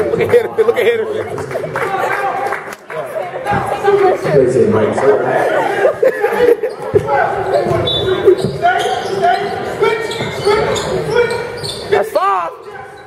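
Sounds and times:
crowd chatter: 0.0s - 13.0s
sneaker squeaks: 6.4s - 13.0s.

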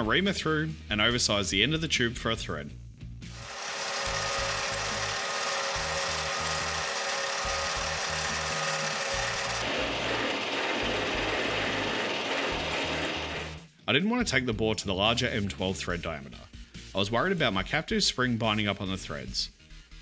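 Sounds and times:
metal lathe humming: 3.3s - 13.6s.

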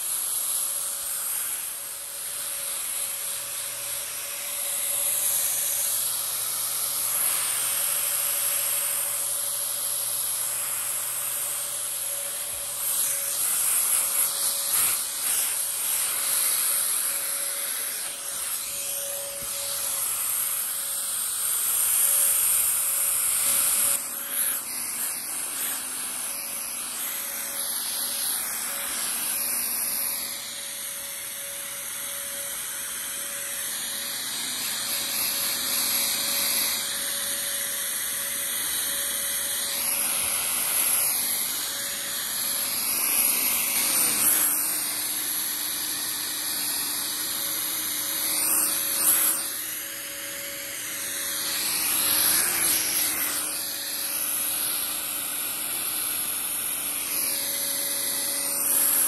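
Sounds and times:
fogger motor whining: 0.0s - 59.0s.

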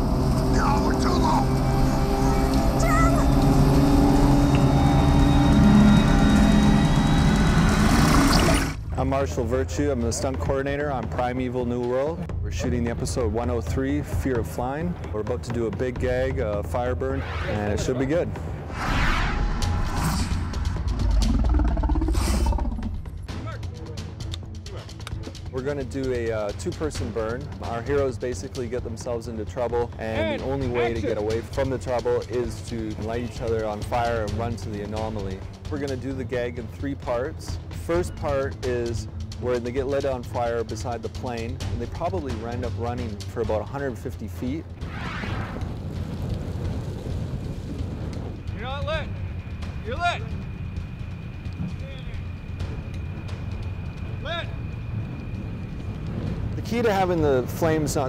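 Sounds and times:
fiery whoosh: 18.5s - 23.1s
deep low rumble: 18.6s - 23.3s, 50.3s - 58.0s.

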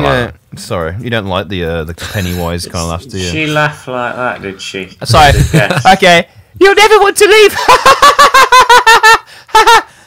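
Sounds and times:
man's falsetto cackling laugh: 7.8s - 9.9s.

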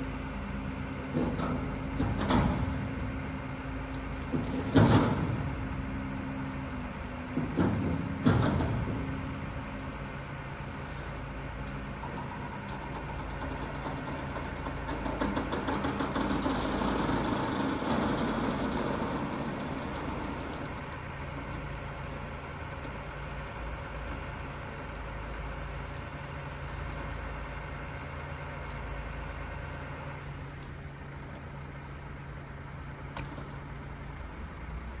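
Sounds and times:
truck engine running: 0.0s - 35.0s
loud knocks: 7.3s - 9.2s.

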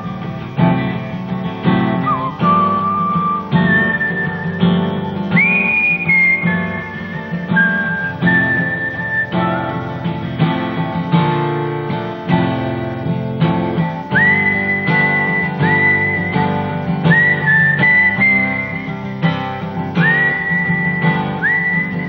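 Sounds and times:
whistled melody: 0.0s - 11.1s, 13.7s - 22.0s
acoustic guitar strumming: 0.0s - 22.0s.

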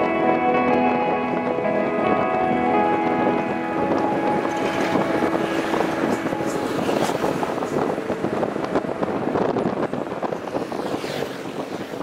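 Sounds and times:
background music with held notes: 0.0s - 10.4s
truck road noise: 0.0s - 12.0s
wind buffeting microphone: 0.0s - 12.0s.

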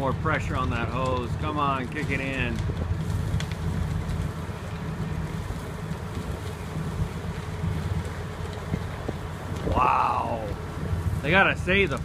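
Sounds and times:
diesel pump engine drone: 0.0s - 12.0s
wind buffeting microphone: 0.1s - 12.0s.

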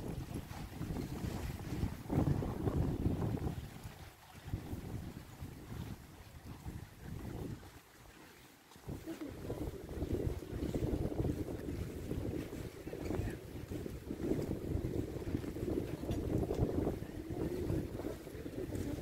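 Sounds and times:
wind on microphone: 0.0s - 19.0s.

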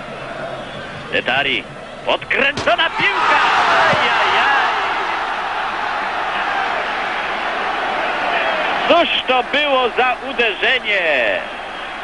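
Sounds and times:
stadium crowd cheering: 2.3s - 12.0s.

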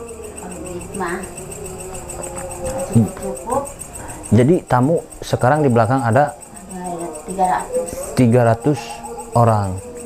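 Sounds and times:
crickets chirping: 0.0s - 10.0s
low sustained tone: 0.0s - 10.0s.

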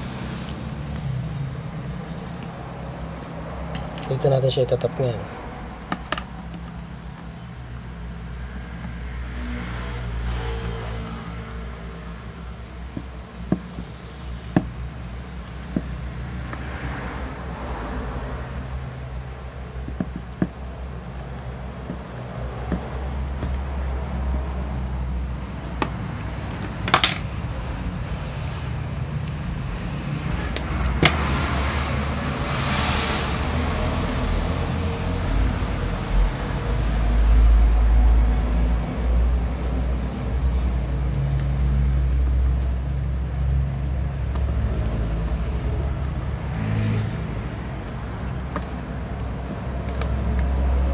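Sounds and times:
road traffic rumble: 0.0s - 50.9s.

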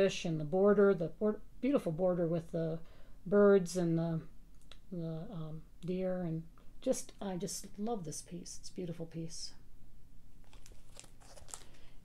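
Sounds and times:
plastic sleeve crinkling: 10.4s - 12.0s.

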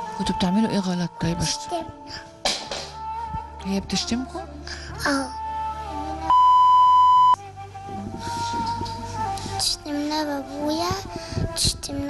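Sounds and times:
soft background music: 0.0s - 12.0s
censor bleep: 6.3s - 7.4s.

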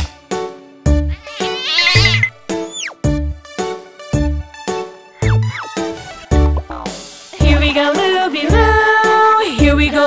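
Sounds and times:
upbeat children's instrumental music: 0.9s - 10.0s
cartoon cat yowl: 1.1s - 2.9s
quick falling whistle: 1.2s - 3.0s.

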